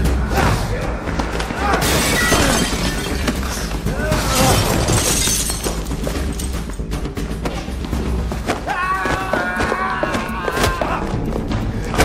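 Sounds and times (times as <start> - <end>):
loud crash of shattering: 1.8 - 6.4
men grunting and shouting: 8.5 - 12.0.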